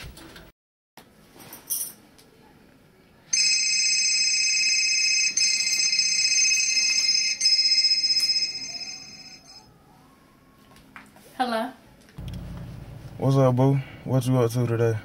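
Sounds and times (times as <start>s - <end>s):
trilling phone ringtone: 3.3s - 9.8s.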